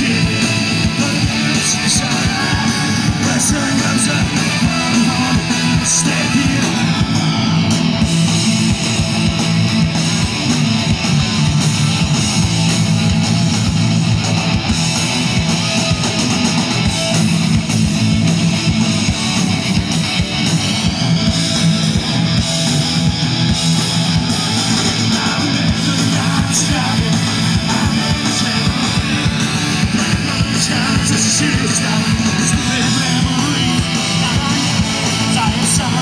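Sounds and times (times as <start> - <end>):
drum kit: 0.0 - 36.0
electric bass: 0.0 - 36.0
electric guitar: 0.0 - 36.0.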